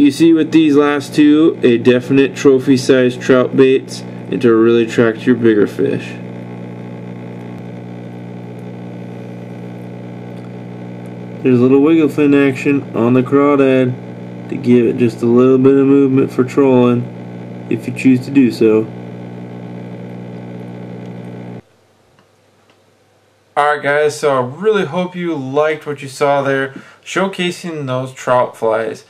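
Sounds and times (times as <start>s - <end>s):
steady mechanical hum: 0.0s - 29.0s.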